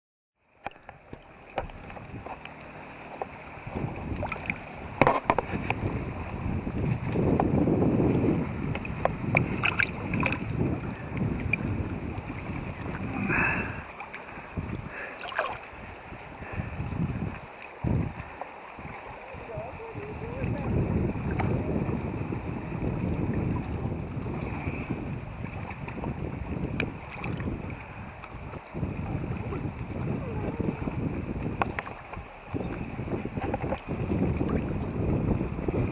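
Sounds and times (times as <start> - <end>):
water sloshing and splashing: 0.5 - 35.9
low rumbling buffeting: 0.8 - 35.9
sharp splashes or knocks: 3.2 - 5.8, 8.8 - 10.5, 15.2 - 15.7.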